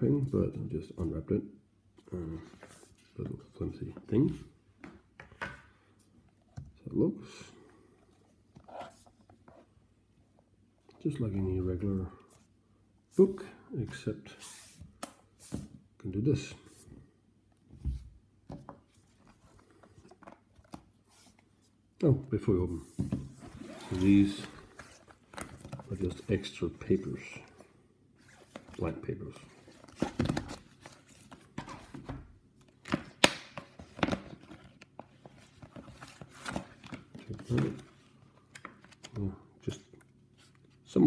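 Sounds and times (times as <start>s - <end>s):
paper sheets rustling: 22.8s - 26.4s.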